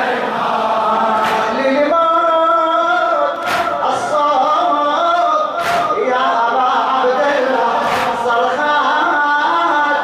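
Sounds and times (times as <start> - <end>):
men chanting in unison: 0.0 - 10.0
hand slapping chest: 1.2 - 1.5, 3.4 - 3.8, 5.6 - 5.9, 7.9 - 8.2.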